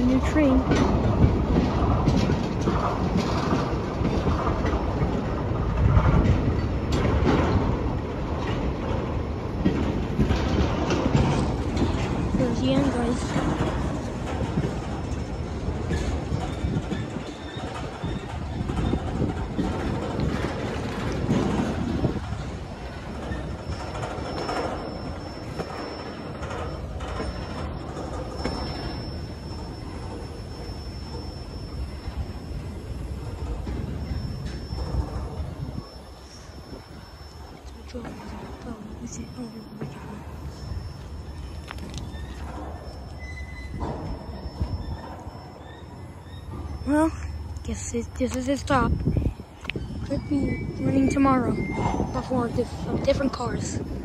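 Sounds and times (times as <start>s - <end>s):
freight train rumbling past: 0.0s - 54.0s
wheels clicking on rails: 0.0s - 54.0s.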